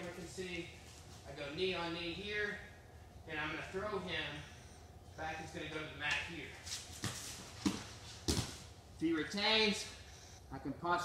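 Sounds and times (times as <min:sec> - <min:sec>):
bare feet scuffling on mats: 0:06.5 - 0:08.8.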